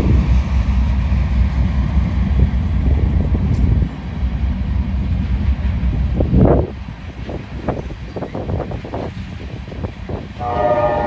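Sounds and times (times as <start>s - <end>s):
freight train rumbling past: 0.0s - 11.0s.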